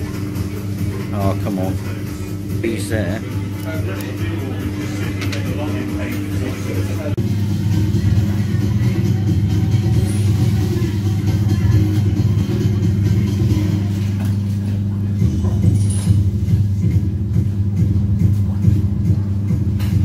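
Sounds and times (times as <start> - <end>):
low machinery drone: 0.0 - 20.0.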